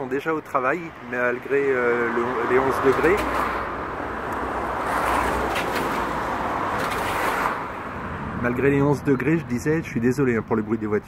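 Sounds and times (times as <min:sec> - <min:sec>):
car passing: 0:00.8 - 0:10.9.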